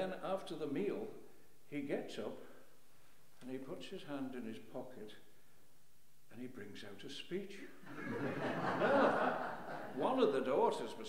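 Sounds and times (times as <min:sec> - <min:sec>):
audience laughing: 0:07.9 - 0:10.0.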